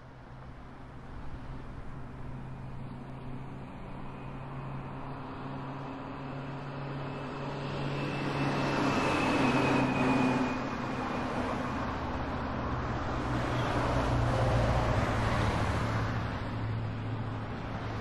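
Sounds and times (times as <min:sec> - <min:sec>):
faint high whine: 0:03.1 - 0:12.3.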